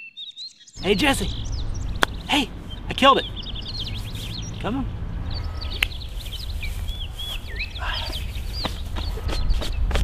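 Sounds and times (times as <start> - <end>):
birds chirping: 0.0 - 10.0
steady low rumble: 0.8 - 10.0.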